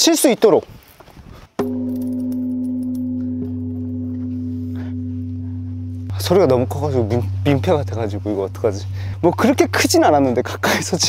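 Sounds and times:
large bronze bell ringing: 1.6 - 11.0.

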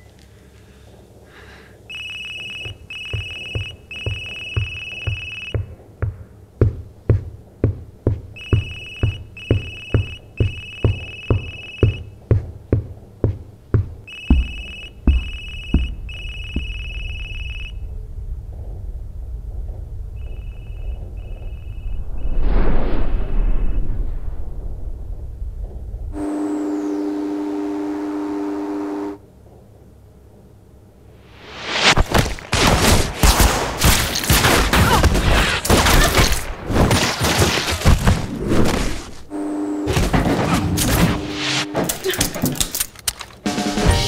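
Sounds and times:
regular thumps: 0.9 - 22.1
electronic telephone ringing: 1.9 - 5.7, 8.4 - 12.0, 14.1 - 17.8
low rumble: 15.9 - 26.2.

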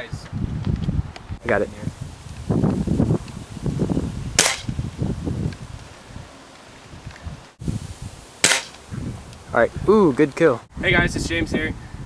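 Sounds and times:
air rifle shot: 4.4 - 4.8, 8.4 - 8.8.

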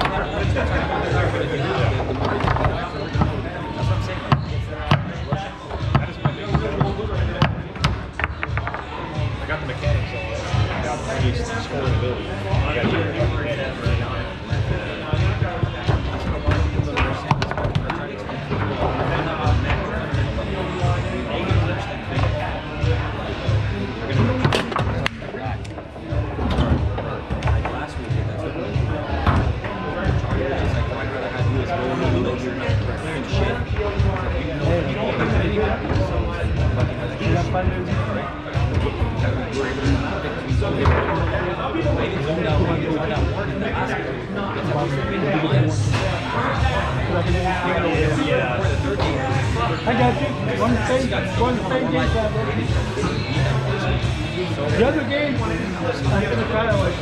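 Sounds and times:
low background voices: 0.0 - 57.0
foosball ball clacking: 5.9 - 8.9
foosball rods knocking: 5.9 - 8.9.

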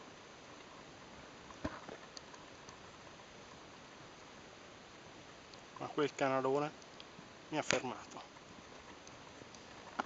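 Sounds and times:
steady faint hiss: 0.0 - 10.0
faint high ticks: 2.1 - 2.8, 6.7 - 10.0.

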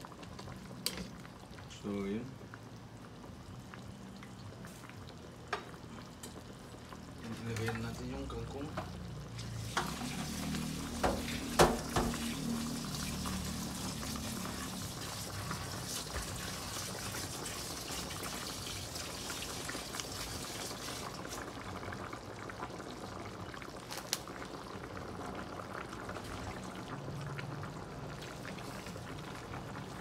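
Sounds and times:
broth bubbling in pot: 0.0 - 30.0.

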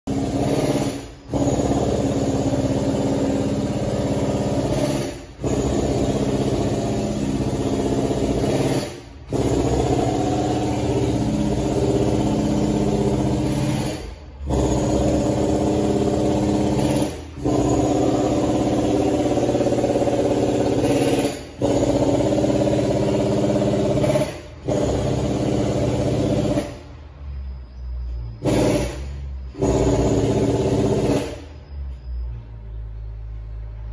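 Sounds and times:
loud mechanical engine hum: 0.1 - 33.9.

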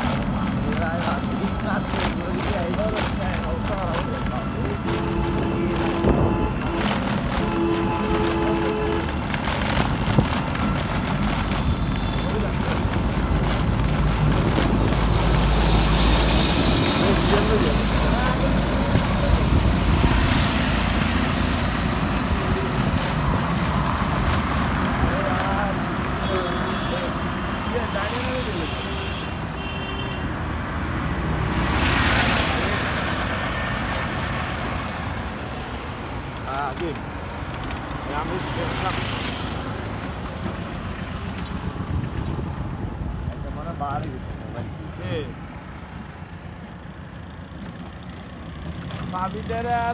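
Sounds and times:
auto-rickshaw passing: 0.0 - 49.9
bus passing: 0.0 - 49.9
vehicle horn toots: 5.0 - 9.1
vehicle passing: 30.4 - 35.9.

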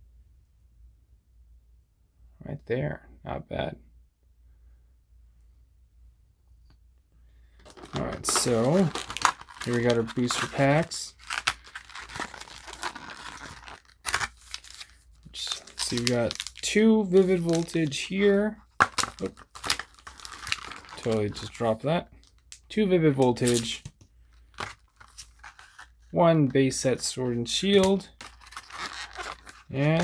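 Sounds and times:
plastic blister crackling: 7.6 - 18.0, 27.8 - 30.0
foil wrappers crinkling: 7.6 - 21.6, 23.3 - 26.0, 27.7 - 30.0.

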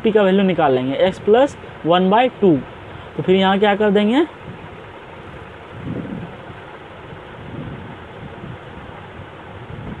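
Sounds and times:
low hiss and rumble: 0.0 - 10.0.

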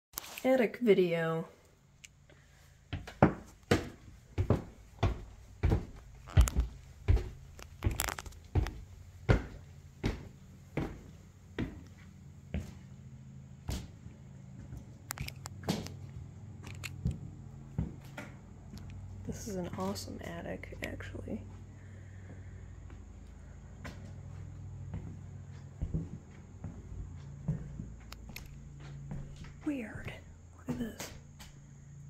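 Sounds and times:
low steady hum: 0.4 - 32.0
footsteps on plywood floor: 2.9 - 16.4, 17.0 - 31.6
footsteps on wooden stairs: 2.9 - 31.6.

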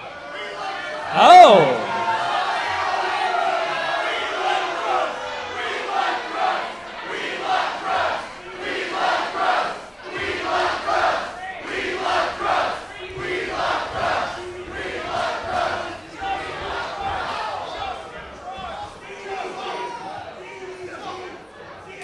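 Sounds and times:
crowd chanting in unison: 0.4 - 18.1.

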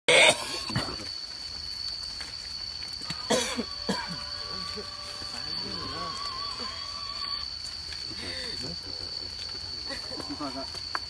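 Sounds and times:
person coughing: 0.1 - 1.0, 3.3 - 4.2
thin high tone: 3.6 - 7.4.

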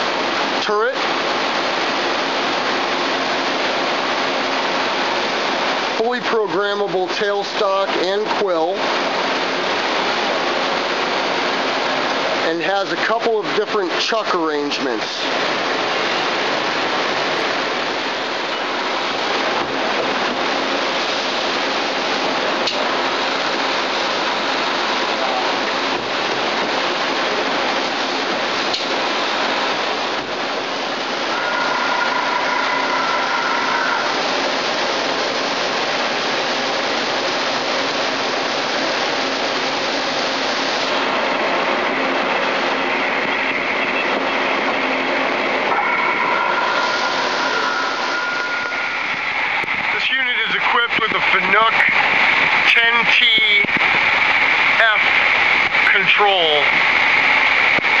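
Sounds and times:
faint high whining tones: 31.0 - 35.4, 45.0 - 53.7.

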